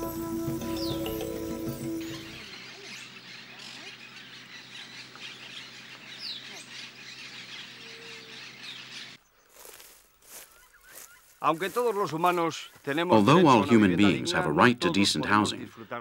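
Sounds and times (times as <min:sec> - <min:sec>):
bird chirps: 0:00.0 - 0:11.7.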